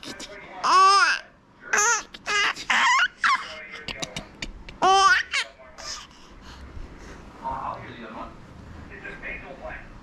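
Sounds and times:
baby laughing: 0:00.0 - 0:06.1.

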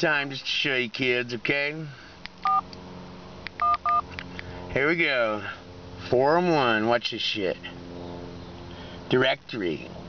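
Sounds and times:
phone keypad two-tone beeps: 0:02.4 - 0:02.6, 0:03.6 - 0:04.0.

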